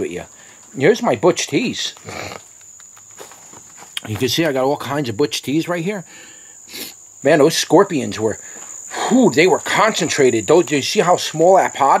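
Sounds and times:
high-pitched insect trill: 0.0 - 12.0.

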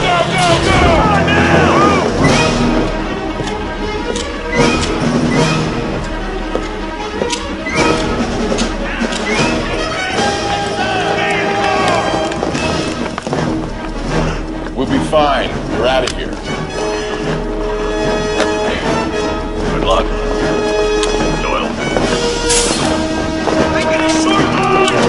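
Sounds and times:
people shouting: 0.0 - 2.6, 8.6 - 12.8, 23.5 - 25.0
sharp hits: 0.0 - 5.2
action film music: 0.0 - 25.0.

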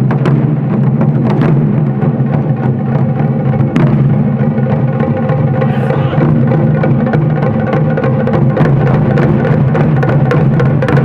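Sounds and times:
taiko drums pounding: 0.0 - 11.0.

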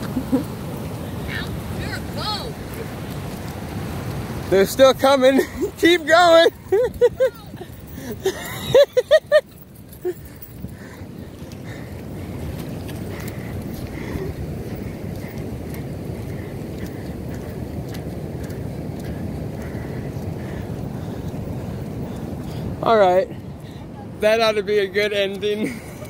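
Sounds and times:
ocean surf breaking on beach: 0.0 - 9.4
wind on microphone: 6.5 - 24.1.

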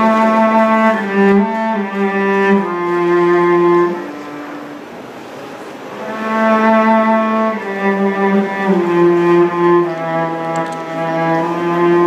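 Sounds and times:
bowed cello melody: 0.0 - 12.0.

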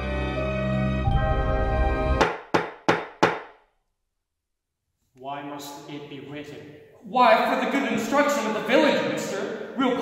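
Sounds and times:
soundtrack music: 0.0 - 2.2
sharp percussive strikes: 2.2 - 3.5.

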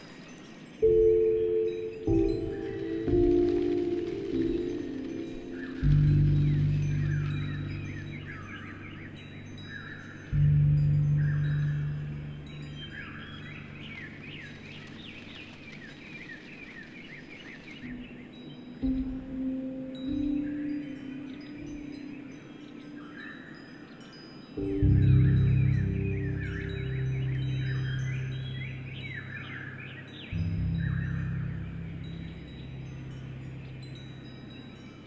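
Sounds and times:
wind chimes ringing: 0.0 - 15.1, 18.0 - 35.0
slow piano music: 0.0 - 15.8, 17.8 - 35.0
birds chirping: 0.0 - 35.0.

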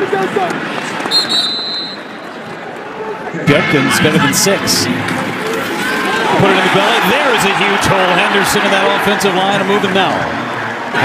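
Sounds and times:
stadium crowd noise: 0.0 - 11.0
referee's whistle: 1.1 - 2.2
man's voice: 3.4 - 5.0, 6.4 - 10.4.

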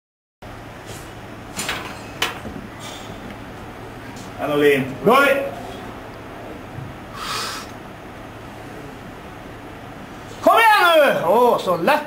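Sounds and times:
steady low hum: 0.4 - 12.0.

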